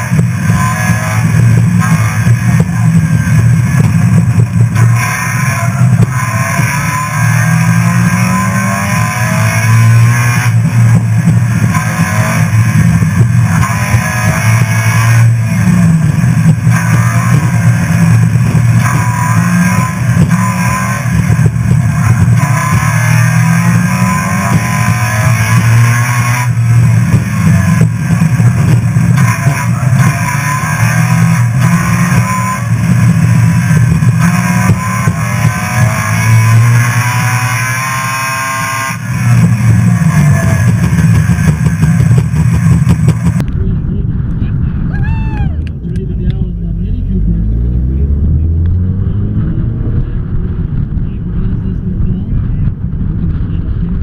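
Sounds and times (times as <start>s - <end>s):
car engine revving hard: 0.0s - 43.9s, 45.8s - 54.0s.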